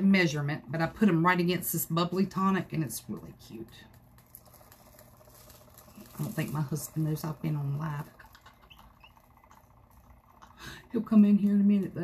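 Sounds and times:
glitter pattering on tumbler: 1.2s - 12.0s.

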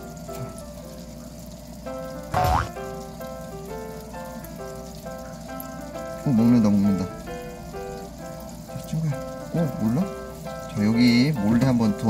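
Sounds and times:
background music with held notes: 0.0s - 12.0s.

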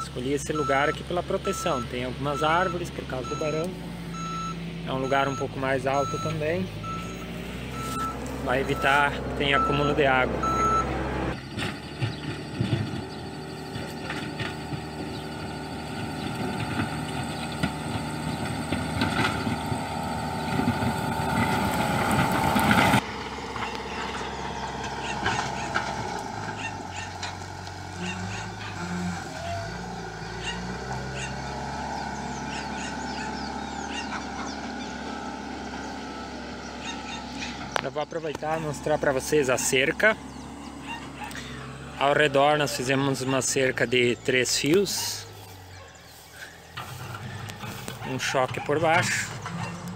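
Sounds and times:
backhoe diesel engine running: 0.0s - 49.9s.

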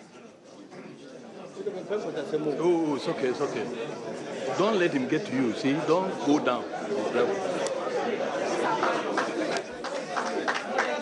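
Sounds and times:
overlapping chatter of voices: 0.0s - 11.0s.

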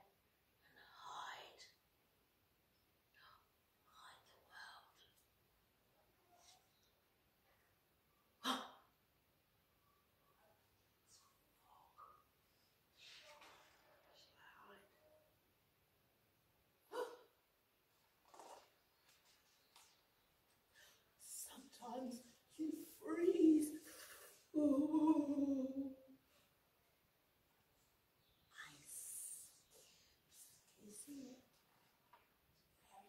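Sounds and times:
woman whispering: 0.6s - 1.8s, 3.1s - 5.2s, 11.1s - 12.3s, 12.9s - 15.3s, 20.8s - 26.0s, 28.2s - 31.6s, 32.8s - 33.0s.

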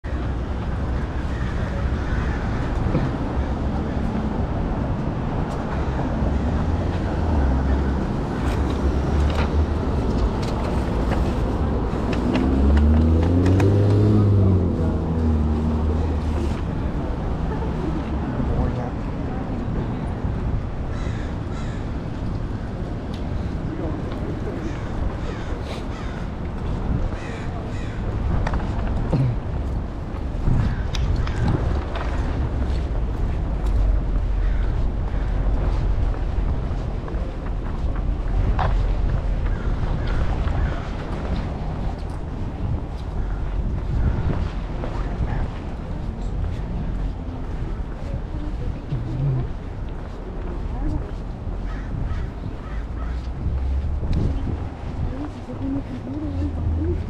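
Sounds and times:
road noise from passing cars: 0.0s - 57.0s
wind rumble on microphone: 0.0s - 57.0s
vehicle engine driving past: 11.3s - 16.6s.

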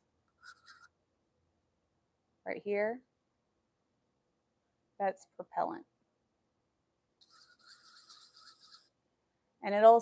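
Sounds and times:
stir stick scraping paper cup: 0.4s - 0.9s, 7.2s - 9.0s.

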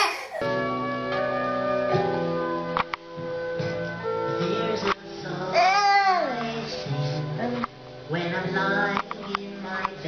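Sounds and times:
child's high voice: 0.0s - 0.5s
background music: 0.0s - 10.0s.

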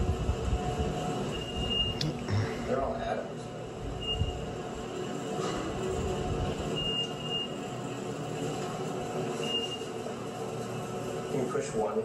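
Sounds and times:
elevator rumble and rattle: 0.0s - 12.0s.

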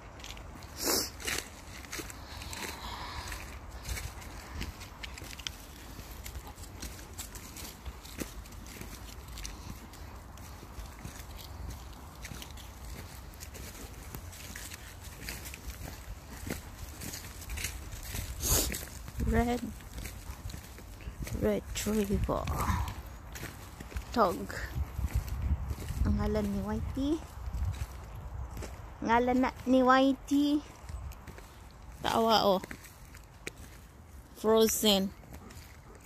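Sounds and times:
footsteps on dirt track: 0.0s - 36.0s.

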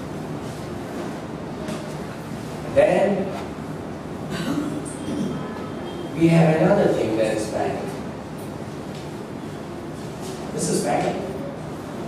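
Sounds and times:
room noise: 0.0s - 12.0s.

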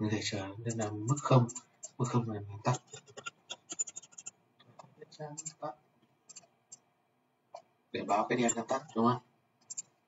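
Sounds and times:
keyboard and mouse clicks: 2.8s - 5.6s, 6.3s - 6.9s, 9.6s - 10.0s.

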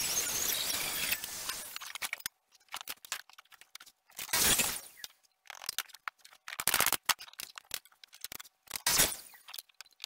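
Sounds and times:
tools and wood clicking and knocking: 1.0s - 4.4s, 5.0s - 10.0s.

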